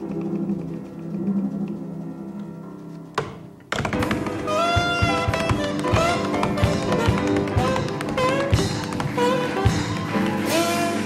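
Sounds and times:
tap shoes on wooden stage: 0:03.2 - 0:11.0
live jazz band: 0:04.0 - 0:11.0.

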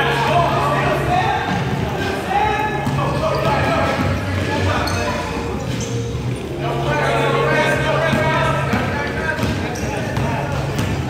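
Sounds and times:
basketballs bouncing on wooden floor: 0:01.4 - 0:06.5, 0:08.0 - 0:11.0.

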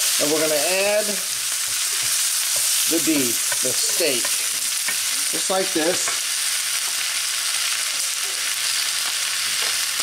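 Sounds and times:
vegetables sizzling in oil: 0:00.0 - 0:10.0.

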